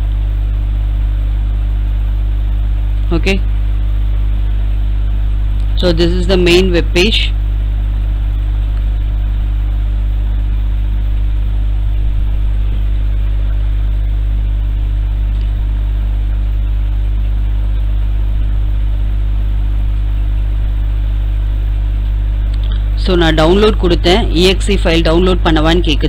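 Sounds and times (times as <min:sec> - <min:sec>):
loud steady low hum: 0:00.0 - 0:26.0.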